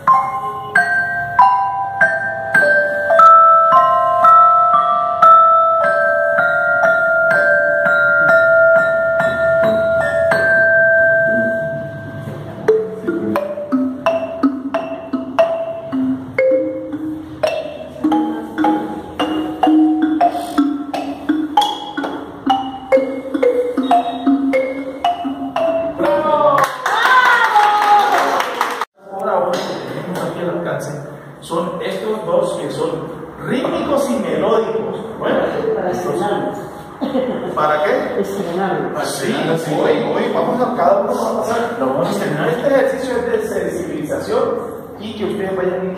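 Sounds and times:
metallophone notes ringing: 0.0s - 26.5s
wooden xylophone notes: 0.0s - 27.0s.

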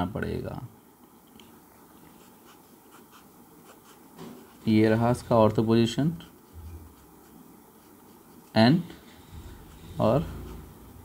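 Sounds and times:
pen scratching on paper: 2.2s - 4.9s, 6.1s - 11.0s.

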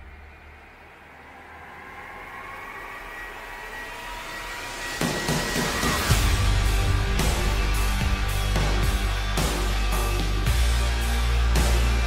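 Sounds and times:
rising whoosh transition: 0.0s - 10.2s.

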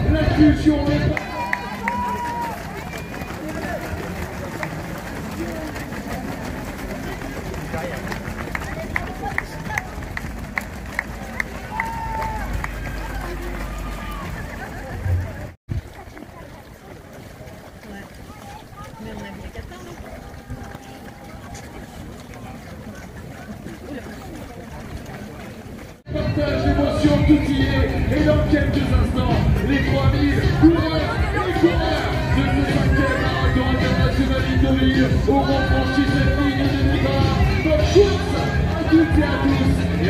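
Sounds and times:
runners' footsteps on wet road: 0.1s - 40.0s
background voices: 3.3s - 40.0s.

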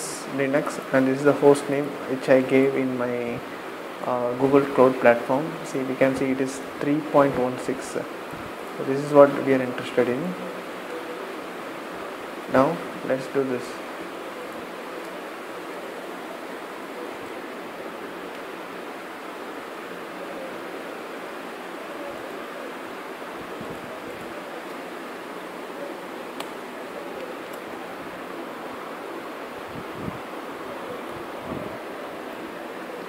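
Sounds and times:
microphone and room hiss: 0.0s - 33.0s.

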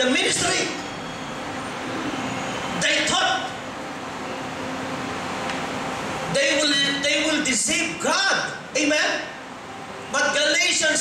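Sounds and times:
man speaking: 2.8s - 3.6s, 6.3s - 9.4s, 10.1s - 11.0s.

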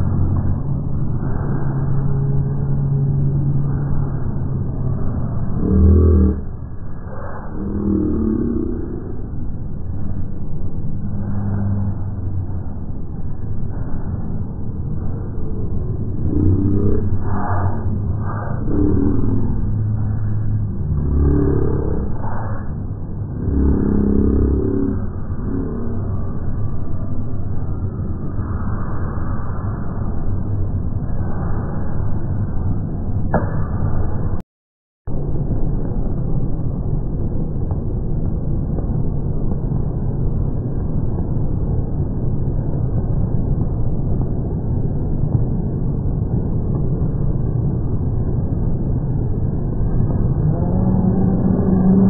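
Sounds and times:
deep bass note: 0.0s - 6.7s, 7.4s - 10.2s, 10.8s - 14.0s, 15.0s - 28.5s, 49.8s - 52.0s
crowd rumble: 0.0s - 34.4s, 35.1s - 52.0s
pa sound: 0.0s - 34.4s.

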